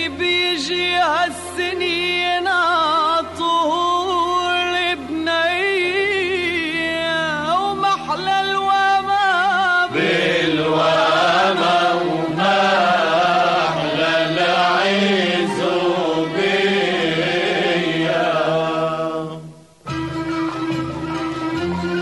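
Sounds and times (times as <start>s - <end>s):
single voice singing: 8.2s - 19.6s
group of voices chanting: 9.9s - 19.5s.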